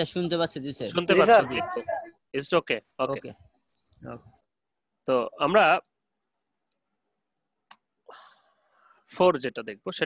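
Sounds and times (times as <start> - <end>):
person speaking: 0.9 - 2.1.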